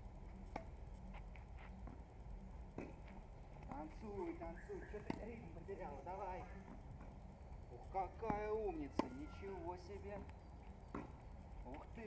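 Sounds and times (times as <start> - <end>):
tennis ball bouncing on asphalt: 0.4 - 2.1, 2.7 - 6.0, 8.2 - 12.0.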